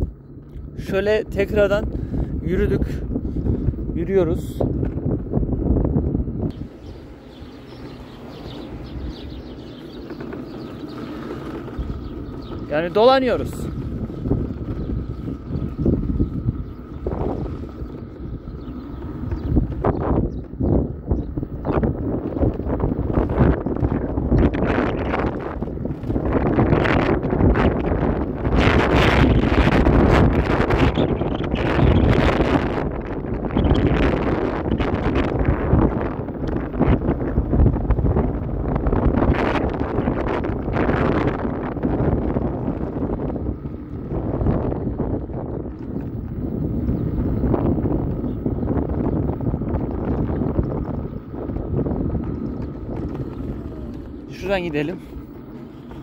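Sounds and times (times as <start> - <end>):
scooter tyre rumble: 0.0 - 56.0
wind rushing over microphone: 0.0 - 56.0.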